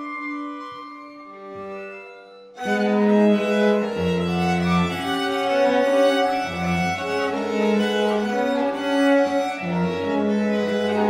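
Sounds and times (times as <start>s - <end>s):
low cello notes: 0.0s - 11.0s
string quartet bowed chords: 0.0s - 11.0s.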